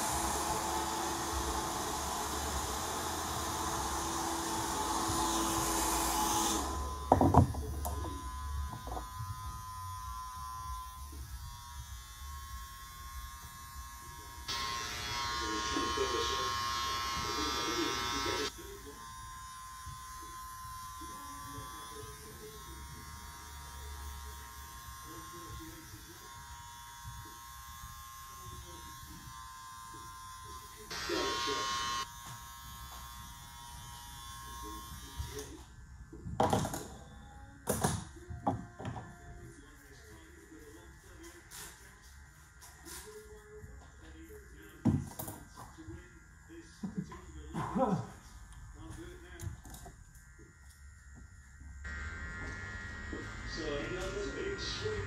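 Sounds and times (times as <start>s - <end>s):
electric beard trimmer buzzing: 0.0s - 35.7s, 50.2s - 55.0s.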